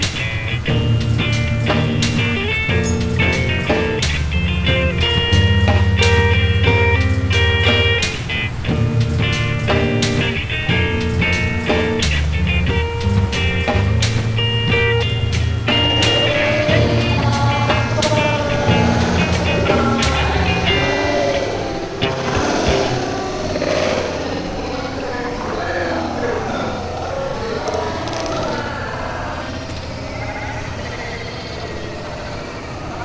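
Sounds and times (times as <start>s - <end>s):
music with bass beat: 0.0s - 21.0s.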